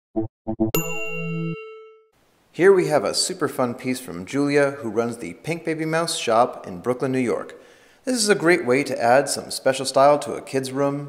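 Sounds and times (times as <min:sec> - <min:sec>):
bright bell-like ding: 0:00.8 - 0:02.1.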